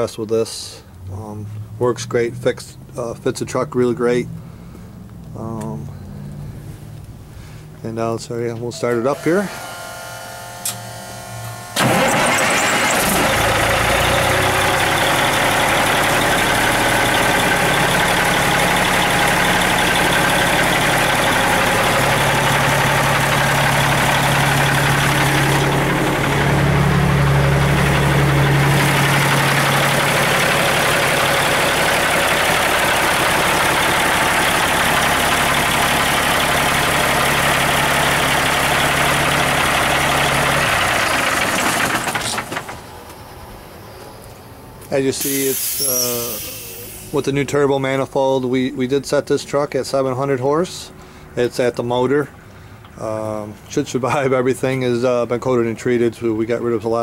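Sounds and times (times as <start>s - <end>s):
diesel truck engine idling: 11.2s - 49.2s.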